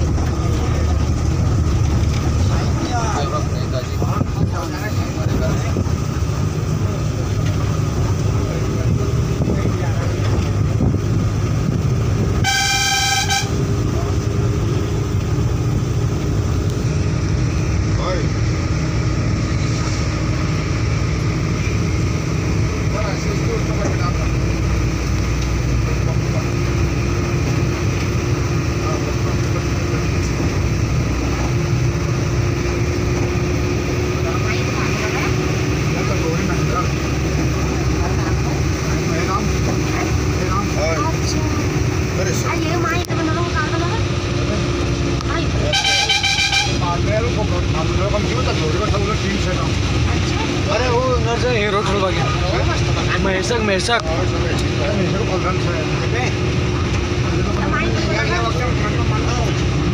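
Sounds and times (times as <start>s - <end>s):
engine and road rumble: 0.0s - 59.9s
car horn honk: 12.4s - 13.6s, 45.7s - 46.9s.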